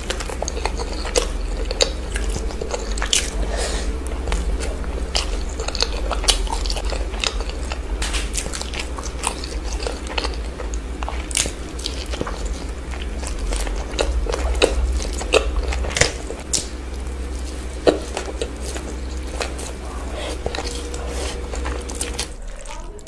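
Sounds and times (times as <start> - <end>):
biting and chewing food: 0.0 - 23.0
low steady hum: 0.0 - 23.0.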